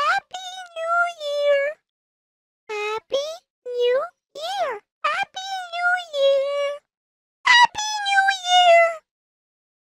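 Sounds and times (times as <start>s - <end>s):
high-pitched cutesy voice: 0.0s - 1.9s, 2.7s - 6.9s, 7.5s - 9.1s.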